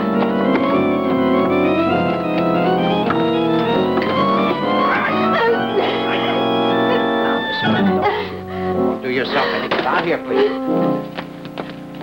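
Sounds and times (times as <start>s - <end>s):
organ playing sustained chords: 0.0s - 12.0s.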